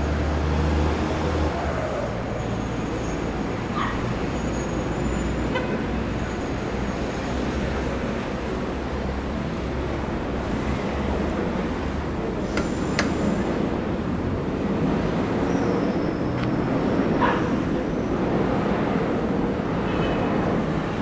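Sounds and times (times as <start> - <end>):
street traffic rumble: 0.0 - 21.0.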